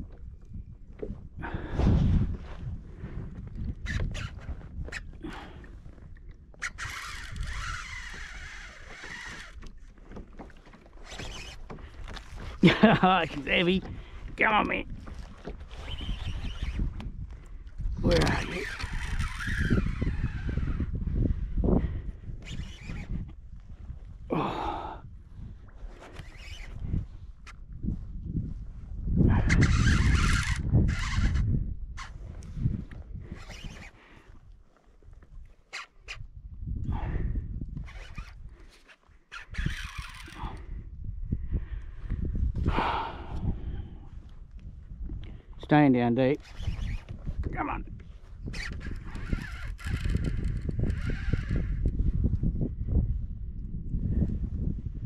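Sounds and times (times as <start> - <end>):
knocks and rustles in a kayak: 0.0 - 24.3, 25.3 - 40.7, 46.3 - 53.2.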